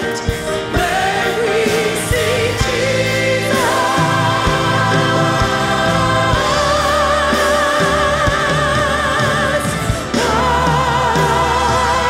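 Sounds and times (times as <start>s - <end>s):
choir singing gospel: 0.0s - 12.0s.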